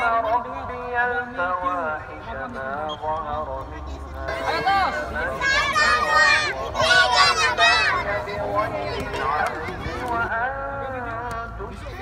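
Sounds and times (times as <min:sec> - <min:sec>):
children and adults talking: 0:00.0 - 0:12.0.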